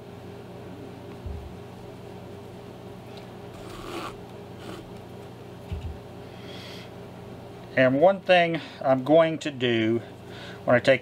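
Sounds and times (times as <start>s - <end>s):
steady low hum: 0.0s - 11.0s
thread rasping through leather: 3.5s - 4.8s.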